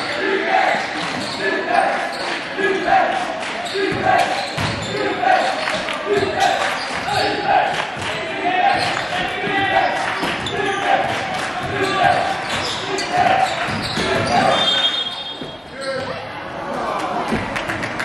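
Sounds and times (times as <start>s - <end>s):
people calling out: 0.0s - 17.2s.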